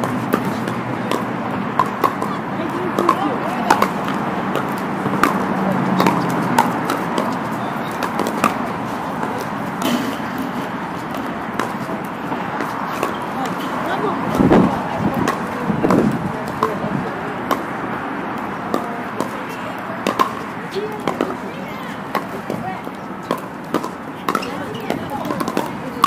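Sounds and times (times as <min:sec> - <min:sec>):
paddles hitting plastic ball: 0:00.0 - 0:13.6, 0:22.0 - 0:26.0
players' voices: 0:00.0 - 0:26.0.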